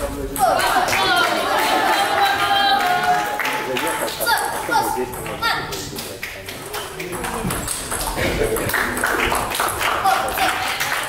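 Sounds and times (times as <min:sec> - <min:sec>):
table tennis balls clicking: 0:03.8 - 0:10.6.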